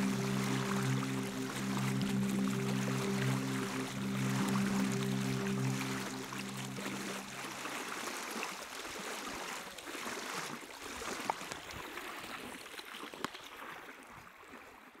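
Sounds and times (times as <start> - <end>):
held music notes: 0.0 - 8.3
water lapping and gurgling: 0.0 - 15.0.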